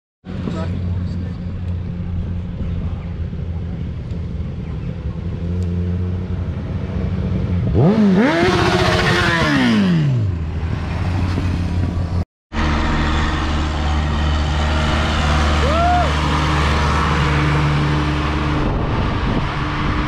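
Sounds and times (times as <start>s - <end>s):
low engine drone: 0.3s - 7.9s, 12.1s - 20.0s
motorcycle accelerating past: 5.4s - 12.0s.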